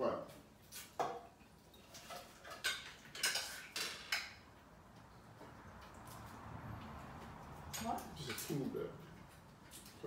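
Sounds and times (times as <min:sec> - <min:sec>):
cutlery clinking against plates: 0:00.7 - 0:04.6, 0:07.6 - 0:10.0.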